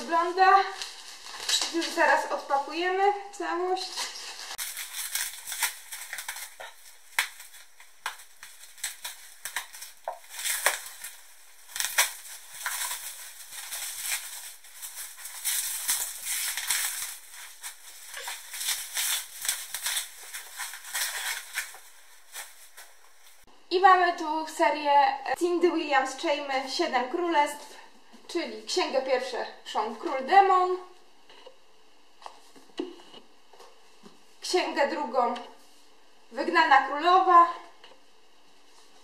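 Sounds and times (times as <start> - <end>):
packaging crinkling and tearing: 3.9 - 23.4.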